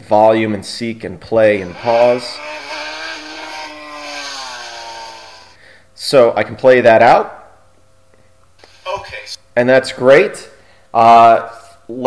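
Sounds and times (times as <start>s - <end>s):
machine-like pitched hum: 1.4s - 6.2s.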